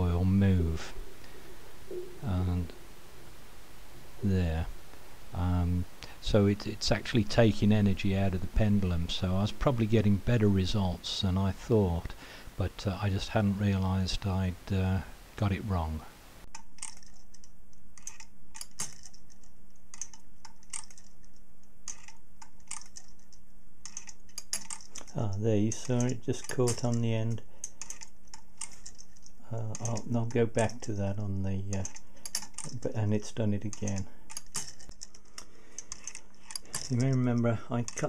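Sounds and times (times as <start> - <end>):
steady low hum: 0.0 - 38.0
pendulum clock clicking: 16.5 - 38.0.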